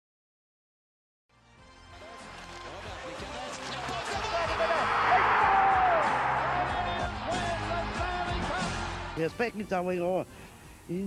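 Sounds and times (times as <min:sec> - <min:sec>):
music: 0:01.3 - 0:11.0.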